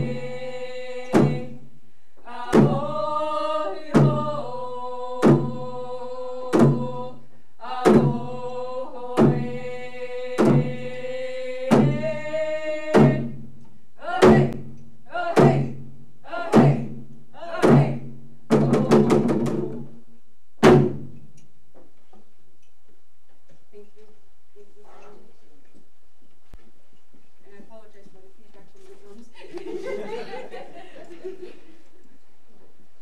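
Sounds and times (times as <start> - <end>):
sung chant: 0.0 - 13.4, 14.0 - 19.4
hand drums beating slowly: 0.9 - 1.6, 2.5 - 3.0, 6.5 - 11.0, 11.6 - 12.2, 12.9 - 13.5, 15.3 - 15.9, 16.5 - 19.9
hand drum beat: 14.2 - 14.7, 15.3 - 15.8, 17.5 - 19.9.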